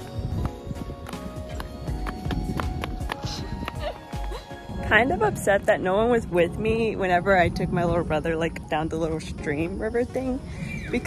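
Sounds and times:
child running in sandals on pavement: 0.0 - 4.7
background music: 0.0 - 11.0.

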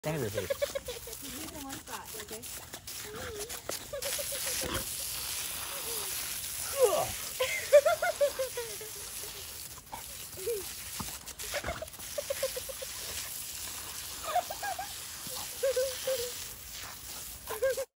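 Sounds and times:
lawn sprinkler spray hissing: 0.0 - 17.9.

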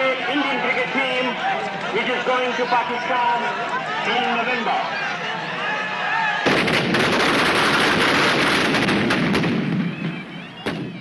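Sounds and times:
firecrackers crackling: 6.4 - 11.0.

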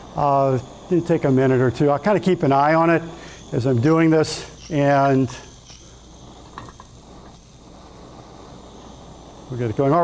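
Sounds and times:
gas burner flame hissing: 0.0 - 10.0.

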